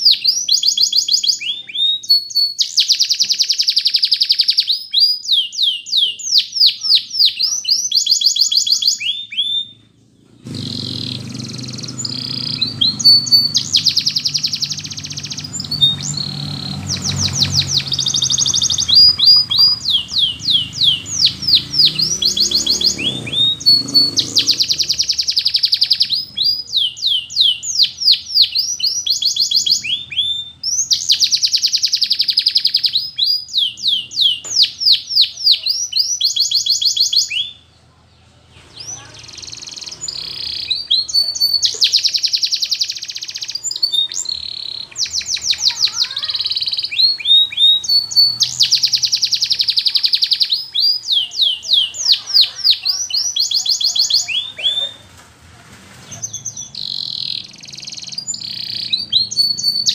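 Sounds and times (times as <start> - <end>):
canary singing trills: 0.0 - 55.2, 56.0 - 59.9.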